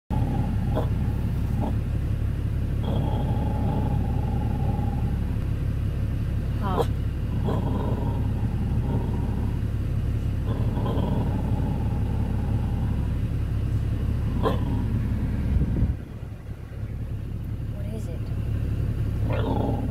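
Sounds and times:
truck engine idling: 0:00.1 - 0:19.9
dog whining: 0:14.3 - 0:15.1.

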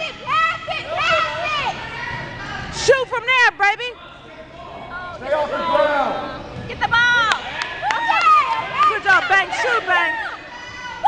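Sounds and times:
excited shouting: 0:07.0 - 0:11.0.

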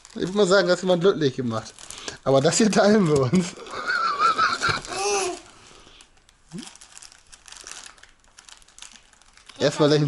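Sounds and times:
plastic packet crinkling: 0:00.0 - 0:10.0.

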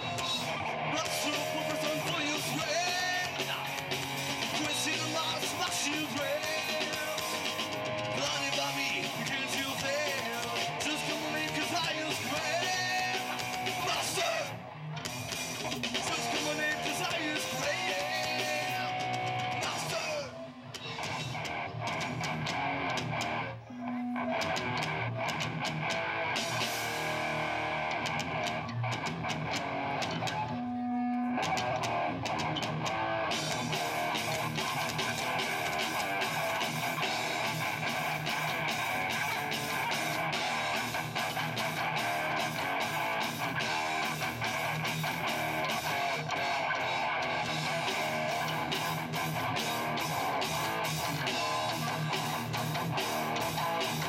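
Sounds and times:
electric guitar: 0:00.0 - 0:54.0
live rock band playing: 0:00.0 - 0:54.0.

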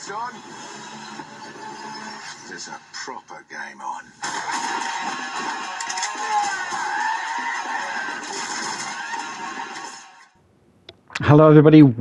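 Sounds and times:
action film music and effects: 0:00.0 - 0:10.4.

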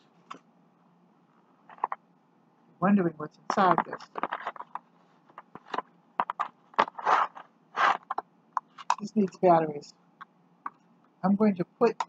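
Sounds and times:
plastic packaging crinkling: 0:03.8 - 0:08.2.

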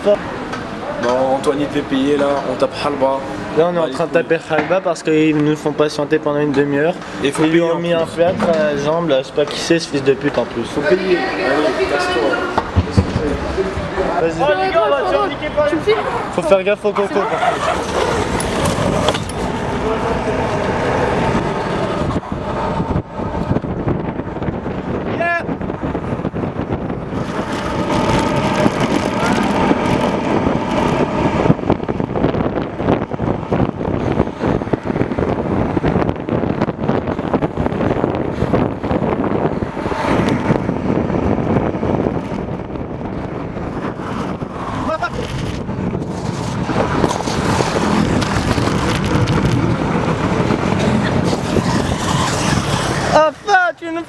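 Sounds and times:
road traffic: 0:00.0 - 0:54.0
scooter wheels rolling on asphalt: 0:00.0 - 0:54.0.

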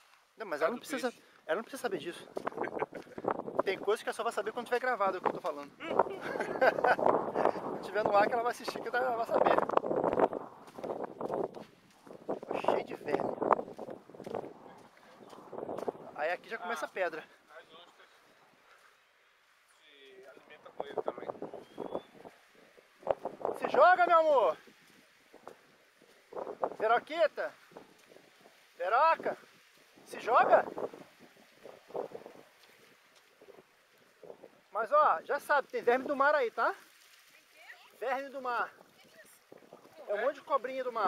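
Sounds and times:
person speaking: 0:00.4 - 0:06.4
wind noise on microphone: 0:02.2 - 0:04.0, 0:05.2 - 0:16.4, 0:20.6 - 0:34.7, 0:38.6 - 0:40.2.

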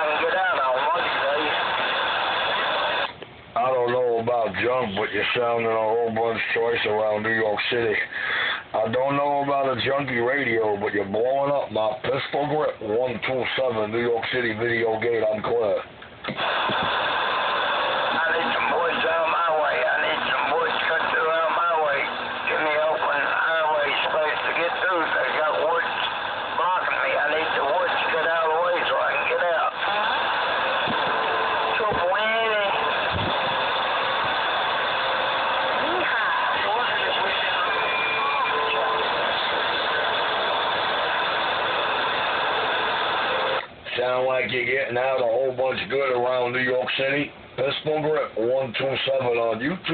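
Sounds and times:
radio static hiss: 0:00.0 - 0:49.9
garbled warbling radio voice: 0:18.0 - 0:30.2.

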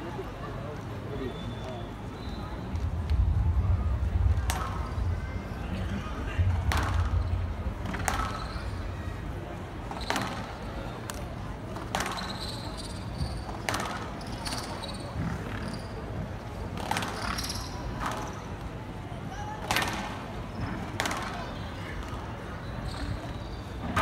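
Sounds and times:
squash ball cracking off rackets: 0:11.1 - 0:12.4, 0:21.0 - 0:21.4.

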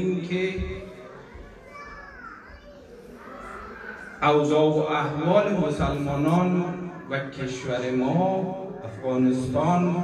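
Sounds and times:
child's voice: 0:01.1 - 0:04.2.

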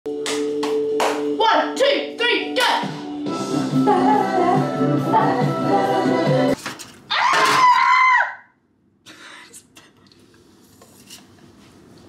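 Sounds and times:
sharp hand claps: 0:00.2 - 0:01.3.

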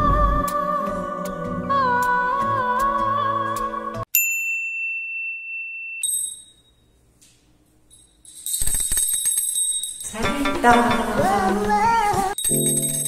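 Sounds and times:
bell ding: 0:04.2 - 0:06.9, 0:12.4 - 0:13.0
higher bell strike: 0:12.4 - 0:13.0.

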